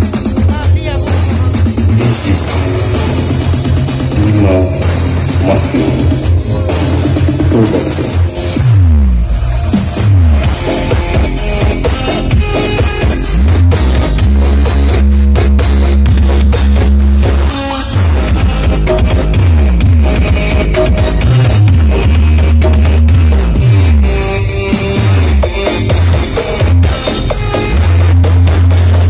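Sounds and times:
loud bass-heavy dance music: 0.0s - 29.0s.

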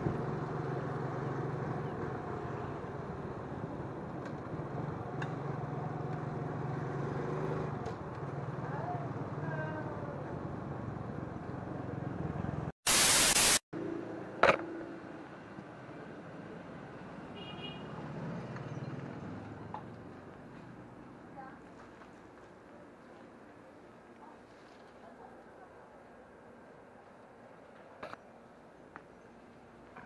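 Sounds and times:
loud burst of hiss: 12.8s - 13.6s.

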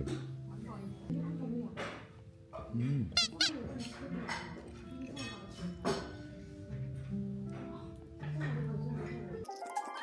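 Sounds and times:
high-pitched squeaks: 3.2s - 3.6s.

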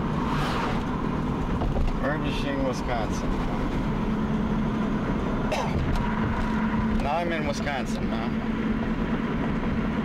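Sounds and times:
car engine and road noise: 0.0s - 10.0s
constant low hum: 0.0s - 10.0s.

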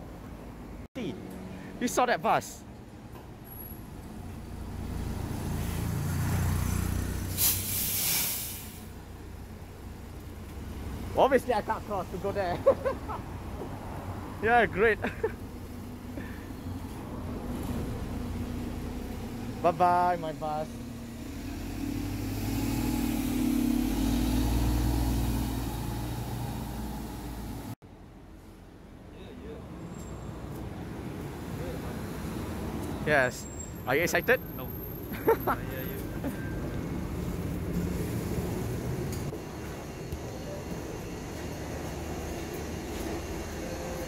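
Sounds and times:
bus engine rumbling past: 3.5s - 28.4s, 29.8s - 44.0s
air brakes hissing: 7.2s - 9.0s.

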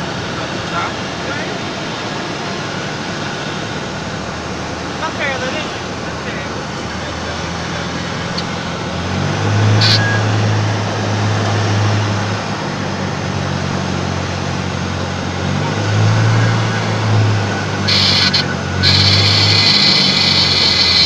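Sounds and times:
propeller aircraft engine drone: 0.0s - 21.0s
loud hissing noise: 17.8s - 21.0s.

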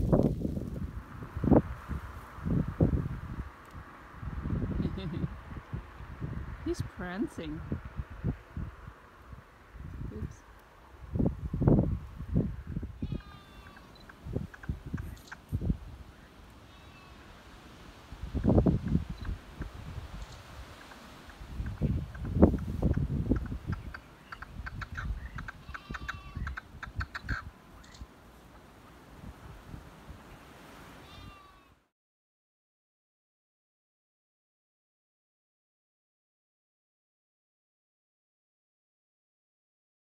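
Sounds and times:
wind buffeting microphone: 0.0s - 16.3s, 17.9s - 28.1s.

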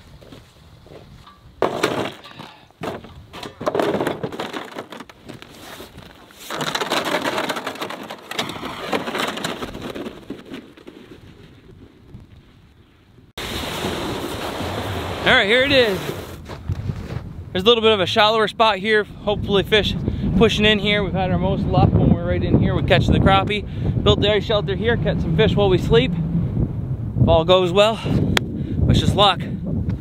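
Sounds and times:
wind buffeting microphone: 11.1s - 30.0s.

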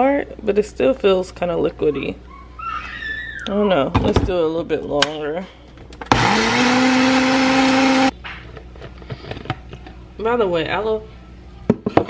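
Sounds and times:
blender motor whining: 6.1s - 8.1s.

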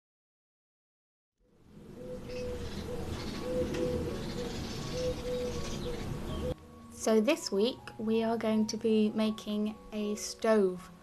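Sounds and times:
small birds chirping faintly: 1.4s - 11.0s
pigeon cooing: 1.8s - 6.6s.

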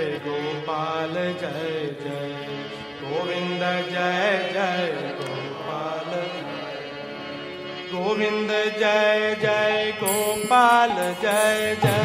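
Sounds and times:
devotional chanting: 0.0s - 12.0s.

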